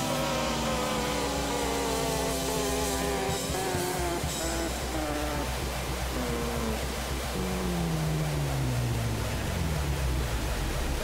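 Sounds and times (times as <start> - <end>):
electric guitar long wavering notes: 0.0 - 11.0
steady low drone: 0.0 - 11.0.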